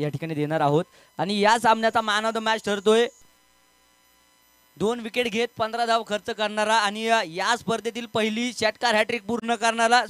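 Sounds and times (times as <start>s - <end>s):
man speaking over microphone: 0.0s - 3.2s, 4.8s - 10.0s
faint electrical hum: 0.0s - 10.0s.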